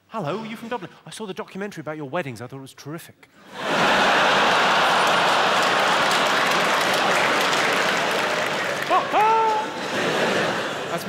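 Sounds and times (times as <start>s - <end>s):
audience laughing: 3.4s - 11.0s
audience applauding: 3.5s - 11.0s.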